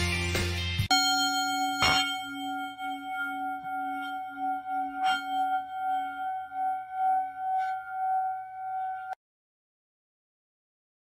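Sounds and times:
struck bell ringing: 0:00.9 - 0:09.2.

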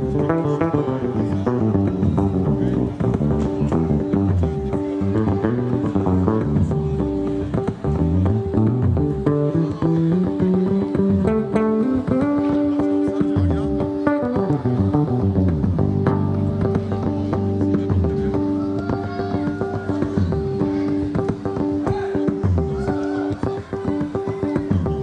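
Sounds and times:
electric bass guitar playing: 0:00.0 - 0:25.0.

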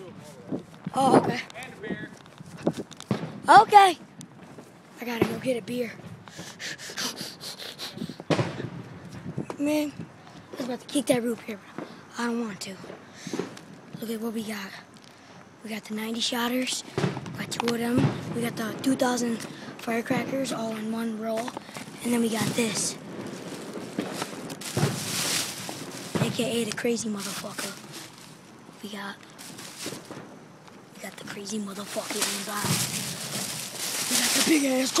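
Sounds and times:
firecrackers popping: 0:00.0 - 0:35.0
packages rustling: 0:21.4 - 0:30.2, 0:31.0 - 0:35.0.

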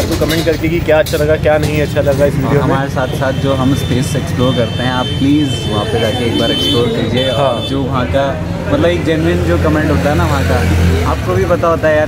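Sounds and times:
men talking: 0:00.0 - 0:12.0
vehicle engine humming: 0:00.0 - 0:12.0.

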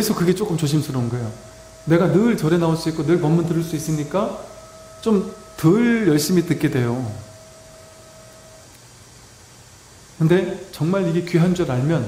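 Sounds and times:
low hiss: 0:00.0 - 0:12.0
thin faint tone: 0:00.0 - 0:12.0.

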